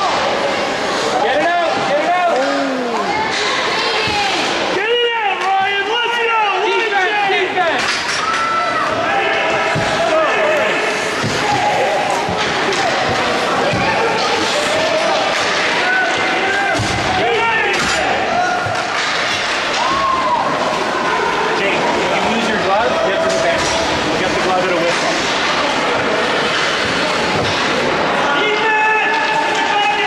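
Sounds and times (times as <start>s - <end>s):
ice arena noise: 0.0s - 30.0s.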